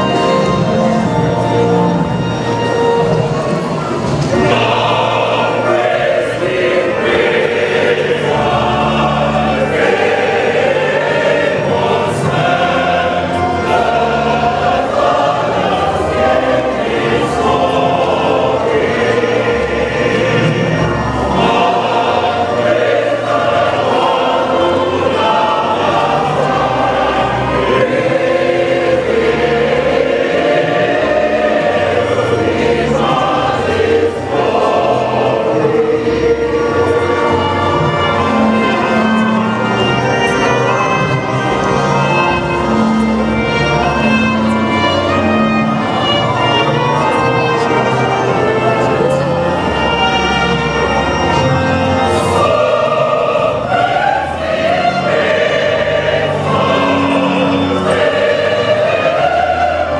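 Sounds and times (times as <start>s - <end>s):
church choir singing: 0.0s - 59.9s.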